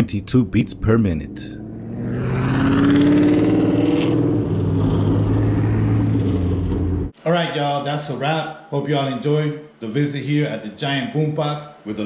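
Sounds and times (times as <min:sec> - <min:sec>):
sports car engine driving past: 0:00.9 - 0:07.1.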